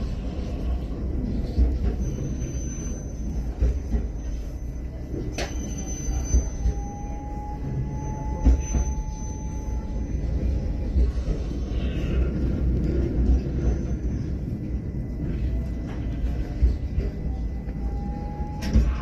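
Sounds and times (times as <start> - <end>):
faint whine: 0.0 - 19.0.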